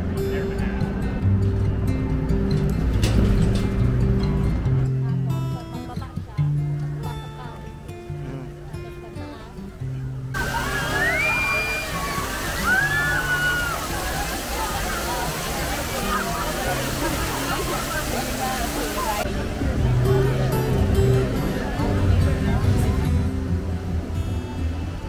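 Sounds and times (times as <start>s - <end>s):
background music with bass: 0.0s - 10.4s, 15.9s - 25.0s
fountain water splashing: 10.3s - 25.0s
high voices calling: 10.4s - 19.2s.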